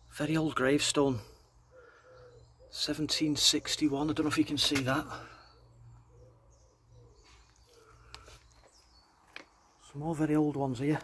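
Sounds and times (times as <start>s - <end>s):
bird cooing: 1.3s - 3.1s, 5.1s - 8.8s.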